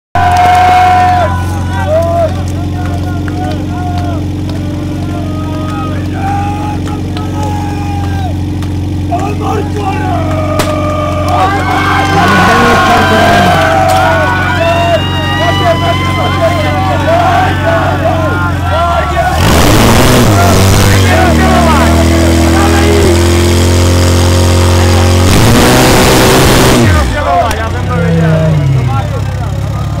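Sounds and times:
spectators shouting and cheering: 0.1s - 30.0s
fire pump engine running: 0.2s - 30.0s
loud rushing bursts: 9.5s - 29.3s.

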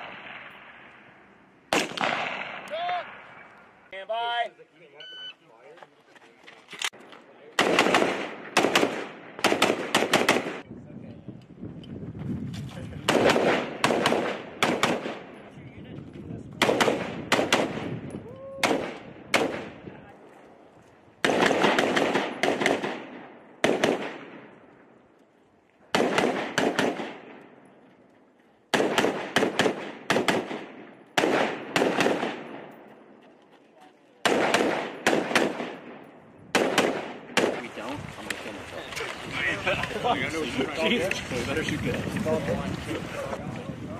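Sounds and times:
rifle shots with echo: 0.0s - 3.6s, 7.5s - 10.7s, 13.0s - 15.6s, 16.5s - 20.0s, 21.2s - 24.8s, 25.9s - 27.7s, 28.7s - 33.2s, 34.2s - 38.0s.

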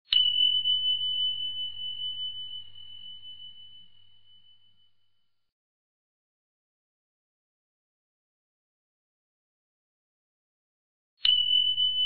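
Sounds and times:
bell ding: 0.1s - 5.2s, 11.2s - 12.0s.

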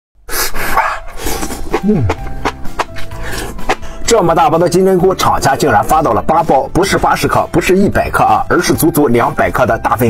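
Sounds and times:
slurping noodles: 0.3s - 4.0s
wet chewing clicks: 1.0s - 4.0s
person humming mm: 1.2s - 2.6s.

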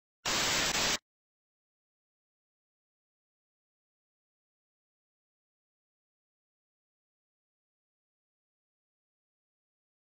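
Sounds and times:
static hiss glitch: 0.2s - 1.0s.

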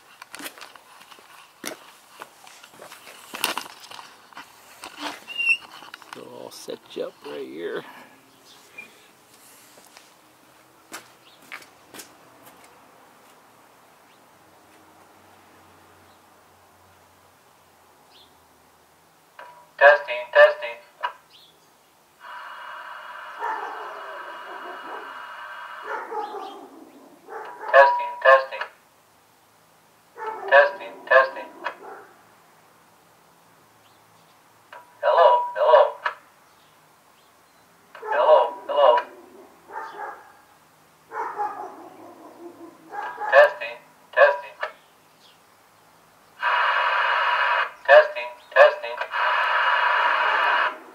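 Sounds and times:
man's voice through loudspeaker: 6.2s - 8.0s, 19.8s - 20.9s, 27.7s - 28.7s, 30.5s - 31.7s, 35.0s - 36.1s, 38.0s - 39.1s, 43.2s - 44.7s, 47.9s - 49.2s
steady whining tone: 22.2s - 25.9s.

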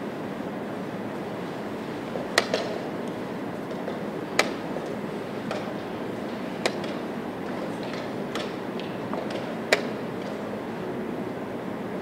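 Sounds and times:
hall background noise: 0.0s - 12.0s.

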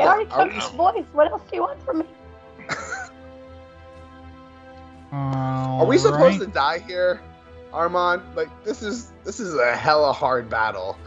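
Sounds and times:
person's voice: 0.0s - 2.0s, 5.2s - 7.2s, 7.8s - 10.9s
game music with held chords: 0.0s - 11.0s.

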